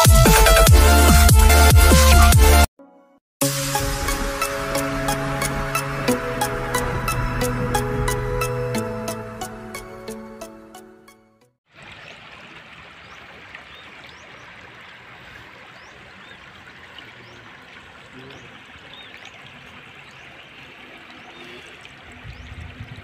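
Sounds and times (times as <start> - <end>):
music: 0.0 - 11.5.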